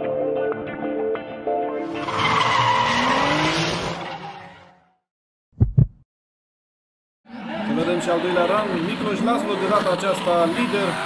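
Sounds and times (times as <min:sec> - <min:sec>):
deep thumps: 0:05.6 - 0:06.0.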